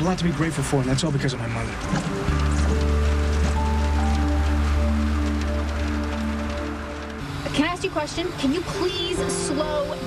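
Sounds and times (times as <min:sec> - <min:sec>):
soft dramatic background music: 0:01.8 - 0:10.0.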